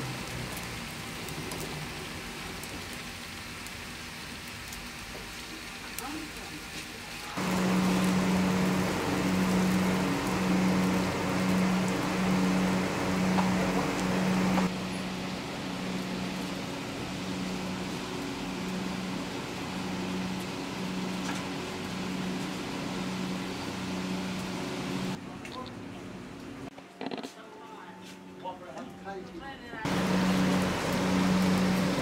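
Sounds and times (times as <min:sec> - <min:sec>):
rushing hiss of air and coals: 0:00.0 - 0:25.2, 0:29.9 - 0:32.0
electric fan motor hum: 0:07.3 - 0:25.2, 0:29.9 - 0:32.0.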